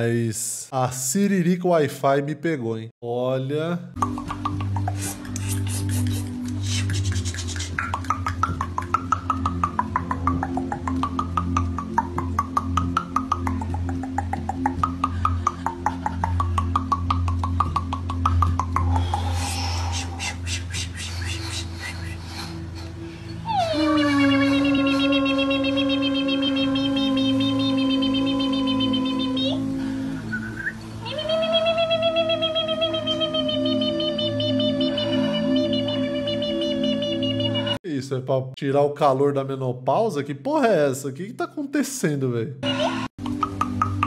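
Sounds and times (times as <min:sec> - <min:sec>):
rapid mouth clicks: 0:04.0 - 0:22.2, 0:43.2 - 0:44.0
low musical drone: 0:04.0 - 0:37.8
long wailing vocal tone: 0:23.4 - 0:30.3, 0:31.0 - 0:37.8.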